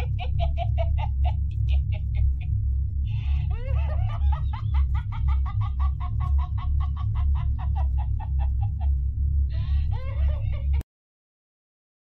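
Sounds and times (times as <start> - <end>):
doll voice laughing: 0.0 - 2.4, 3.2 - 8.9, 9.5 - 10.8.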